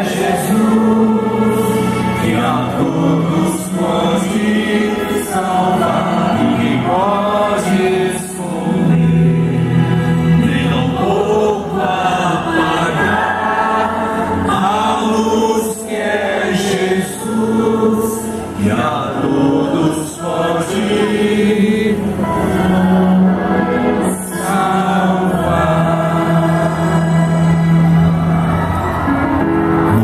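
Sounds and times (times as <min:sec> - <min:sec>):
choir singing gospel: 0:00.0 - 0:30.0.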